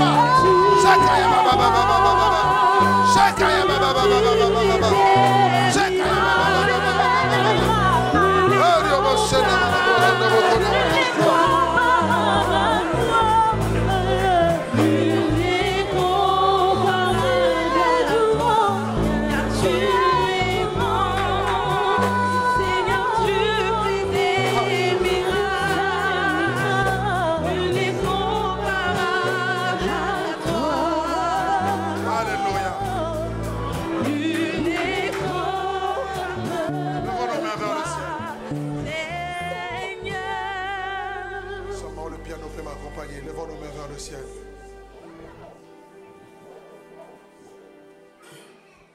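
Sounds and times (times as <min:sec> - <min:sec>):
voices singing with vibrato: 0:00.0 - 0:41.7
low keyboard chords: 0:00.0 - 0:48.2.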